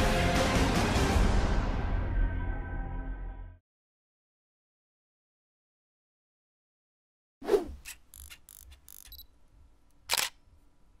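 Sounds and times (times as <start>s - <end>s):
camera shutter click: 7.8s - 9.2s, 10.1s - 10.4s.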